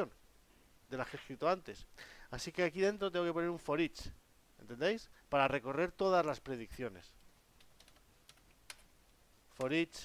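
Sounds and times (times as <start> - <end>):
computer keyboard typing: 7.6 - 8.9.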